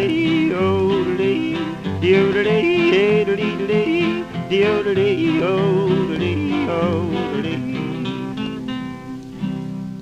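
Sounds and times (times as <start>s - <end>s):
strummed guitar chord ringing: 0.0s - 9.8s
guitars on old record: 0.0s - 10.0s.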